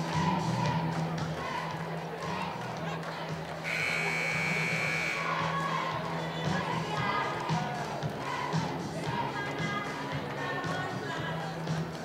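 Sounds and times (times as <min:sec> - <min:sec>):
scoreboard buzzer: 0:03.6 - 0:05.3.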